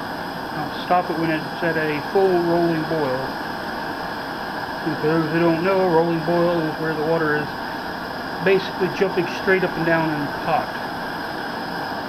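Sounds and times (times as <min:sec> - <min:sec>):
gas stove burner hissing: 0:00.0 - 0:12.0
water bubbling in a pot: 0:00.0 - 0:12.0.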